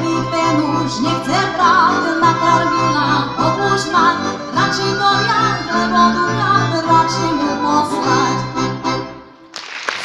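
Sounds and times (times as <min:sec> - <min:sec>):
woman singing with vibrato: 0:00.0 - 0:08.6
folk band playing: 0:00.0 - 0:09.5.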